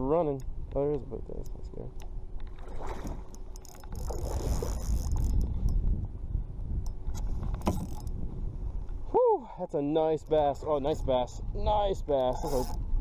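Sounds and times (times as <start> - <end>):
wind buffeting microphone: 0.0 - 9.2, 9.9 - 13.0
water slapping kayak hull: 2.3 - 5.7
fishing reel clicking: 3.3 - 5.8, 7.6 - 8.2, 10.1 - 10.5, 12.1 - 12.8.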